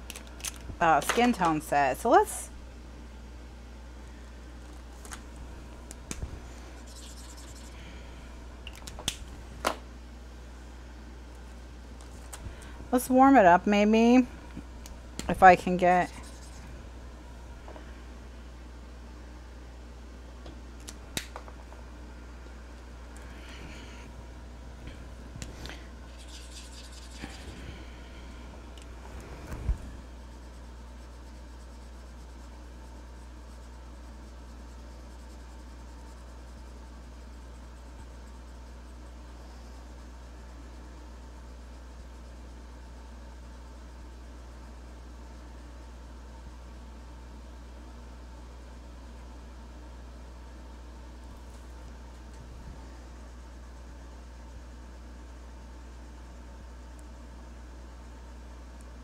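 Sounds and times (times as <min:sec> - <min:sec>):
steady low hum: 0:00.0 - 0:59.0
marker scratching on paper: 0:06.7 - 0:07.8, 0:16.0 - 0:16.7, 0:26.1 - 0:27.6
marker handling clicks: 0:08.7 - 0:09.8.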